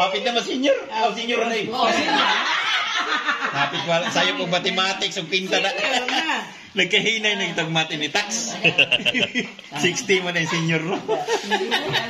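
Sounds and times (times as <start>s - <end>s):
group of people laughing: 1.9s - 4.6s, 8.5s - 9.7s, 10.4s - 12.0s.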